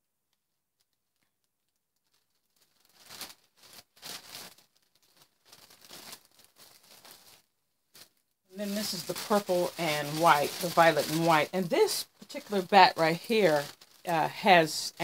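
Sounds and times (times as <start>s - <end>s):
plastic bags rustling: 2.0s - 15.0s.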